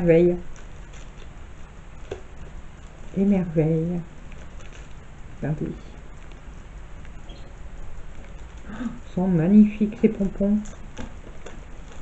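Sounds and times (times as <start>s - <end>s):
packet rustling: 0.4s - 7.2s.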